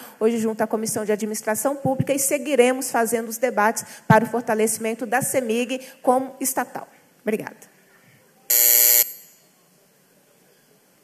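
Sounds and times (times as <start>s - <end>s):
electric buzzer: 8.5s - 9.4s.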